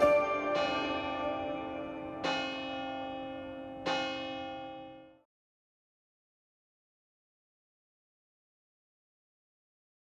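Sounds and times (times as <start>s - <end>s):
bells ringing: 0.0s - 5.3s.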